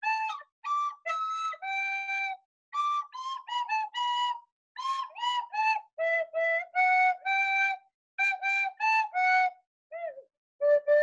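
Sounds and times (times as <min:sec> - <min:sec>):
whistle flute melody: 0:00.0 - 0:11.0.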